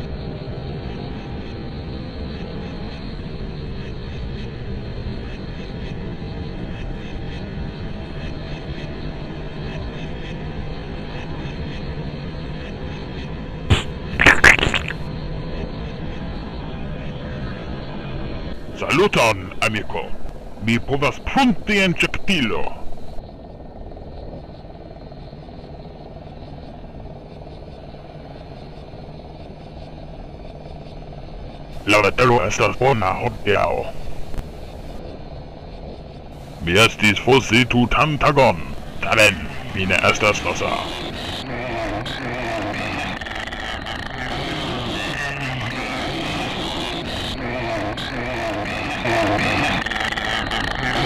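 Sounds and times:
constant low hum: 0.0 - 51.0.

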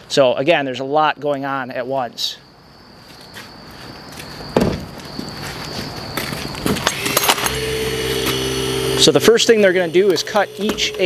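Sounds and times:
thud and handling knocks: 4.5 - 5.3
hydraulic cutter motor running: 6.8 - 11.0.

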